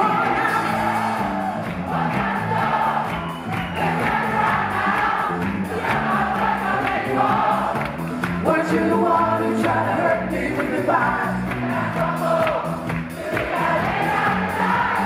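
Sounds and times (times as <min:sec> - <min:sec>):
group of voices singing along: 0:00.0 - 0:15.0
live band playing upbeat song: 0:00.0 - 0:15.0.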